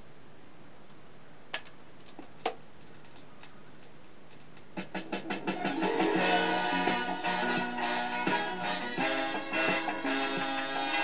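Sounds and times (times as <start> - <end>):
faint low hum: 0.0 - 8.1.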